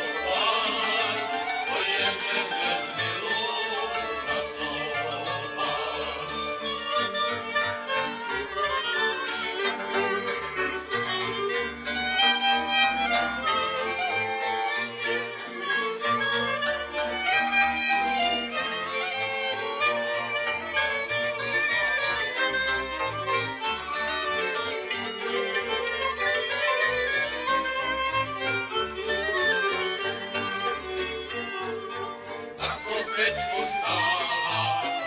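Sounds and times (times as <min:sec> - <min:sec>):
fiddles playing lively folk tune: 0:00.0 - 0:35.0.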